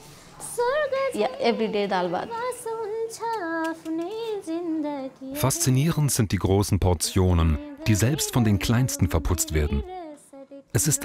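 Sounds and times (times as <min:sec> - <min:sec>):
girl singing: 0:00.4 - 0:06.2, 0:07.0 - 0:11.0.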